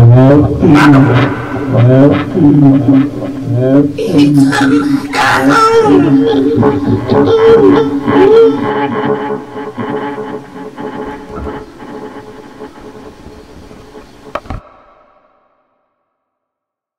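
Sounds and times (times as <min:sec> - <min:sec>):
wailing voice: 0:00.0 - 0:11.6
drone of pitched tones: 0:00.0 - 0:14.6.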